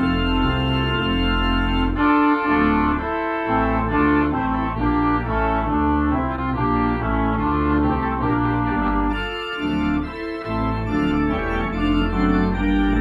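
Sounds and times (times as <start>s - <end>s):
electronic organ playing chords: 0.0s - 13.0s.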